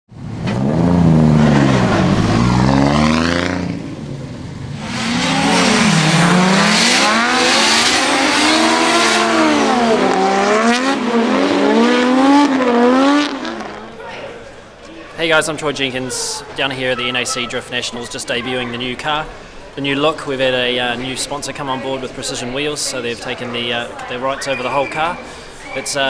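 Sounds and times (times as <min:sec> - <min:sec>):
car engine revving hard: 0:00.2 - 0:13.9.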